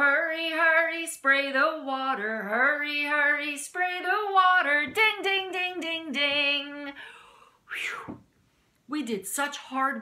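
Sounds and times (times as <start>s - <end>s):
woman singing unaccompanied: 0.0s - 7.0s.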